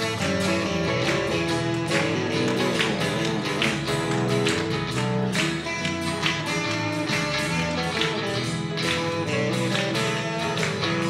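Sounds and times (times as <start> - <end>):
electric guitar: 0.0 - 11.0
strummed acoustic guitar: 0.0 - 11.0.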